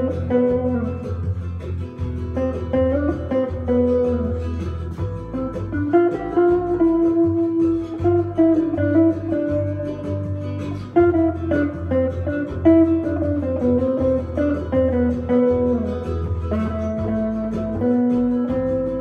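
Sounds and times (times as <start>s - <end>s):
electric guitar melody: 0.0s - 19.0s
low bass line: 0.0s - 19.0s.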